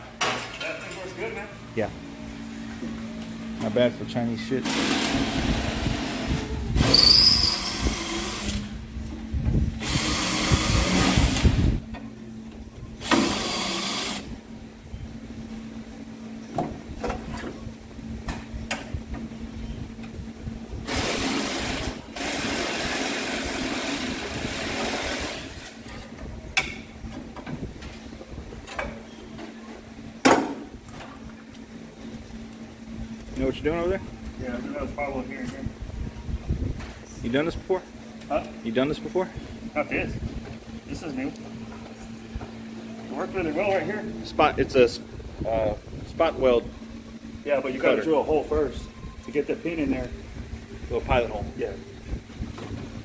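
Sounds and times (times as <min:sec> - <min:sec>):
cordless drill drilling metal: 0:06.8 - 0:08.7, 0:09.8 - 0:11.6, 0:13.0 - 0:14.3.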